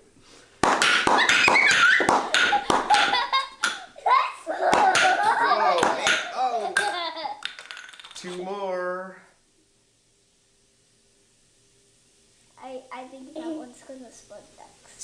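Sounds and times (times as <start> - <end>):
children laughing and squealing: 1.2 - 7.4.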